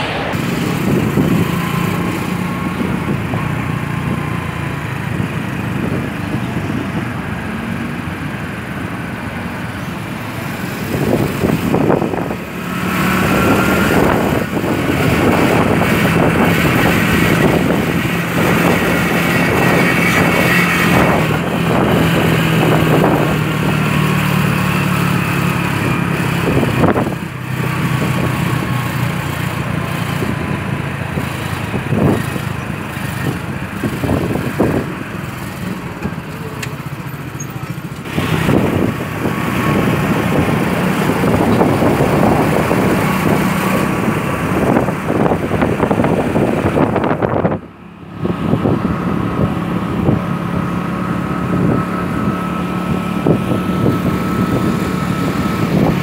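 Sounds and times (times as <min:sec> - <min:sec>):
road and wind noise: 0:00.0 - 0:56.0
motorcycle engine running: 0:00.3 - 0:56.0.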